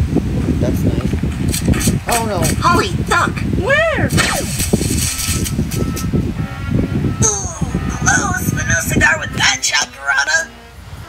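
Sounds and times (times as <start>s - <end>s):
cartoon laser zap: 4.1s - 5.6s.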